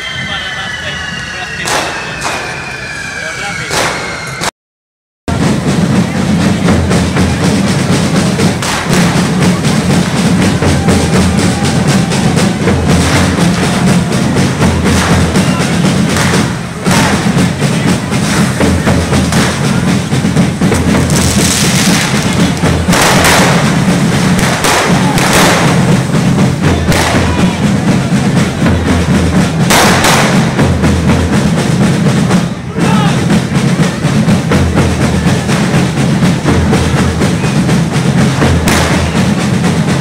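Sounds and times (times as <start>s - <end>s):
big drums beating: 0.0s - 4.5s, 5.3s - 40.0s
fireworks hissing and crackling: 7.8s - 28.4s.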